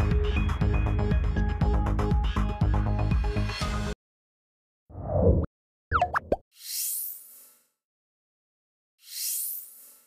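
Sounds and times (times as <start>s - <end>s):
pitched bloops: 5.9s - 6.4s.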